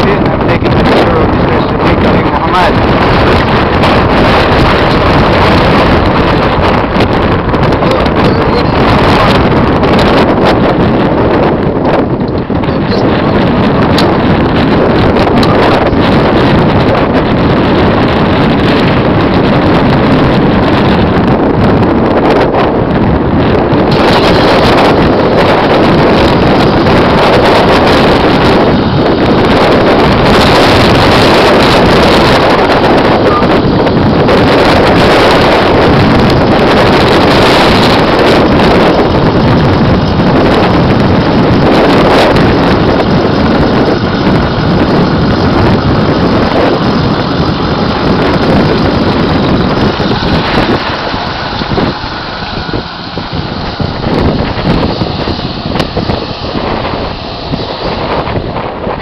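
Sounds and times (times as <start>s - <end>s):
moving vehicle on road: 0.0s - 59.0s
wind buffeting microphone: 0.0s - 59.0s.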